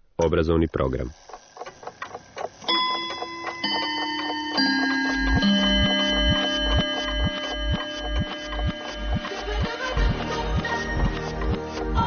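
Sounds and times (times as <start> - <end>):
clock-like ticking: 0.2 - 12.0
held synthesizer notes: 2.6 - 12.0
low pulsing bass beat: 5.0 - 12.0.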